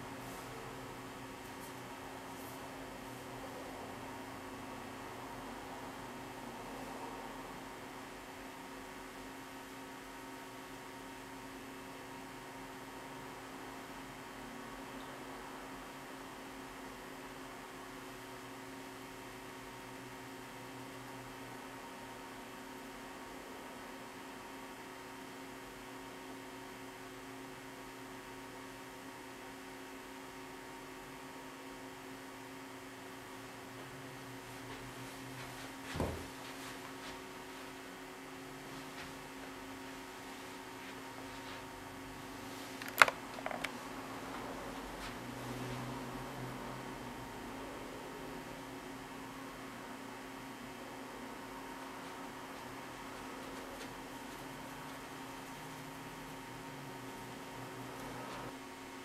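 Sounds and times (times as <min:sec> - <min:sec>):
electrical hum: 0:00.0 - 0:59.0.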